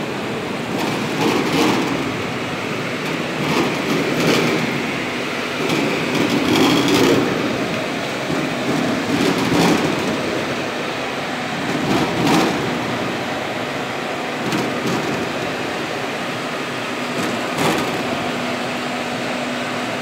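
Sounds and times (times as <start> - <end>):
machinery running: 0.0 - 20.0.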